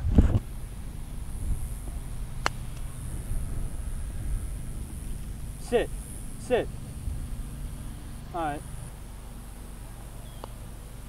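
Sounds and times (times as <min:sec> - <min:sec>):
low outdoor rumble: 0:00.0 - 0:11.0
golf club striking ball: 0:02.2 - 0:03.1.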